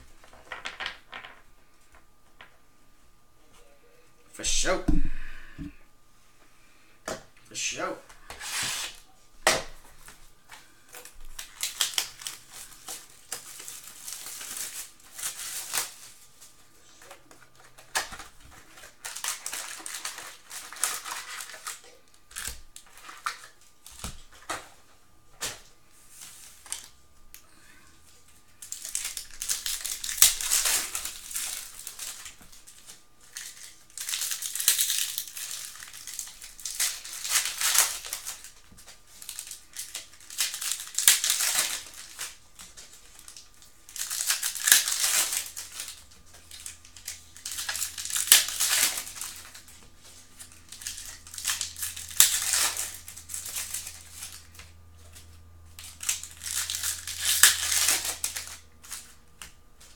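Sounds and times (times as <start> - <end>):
foil wrappers torn and crinkled: 8.3 - 9.0, 9.6 - 24.8, 25.4 - 27.0, 28.1 - 59.9.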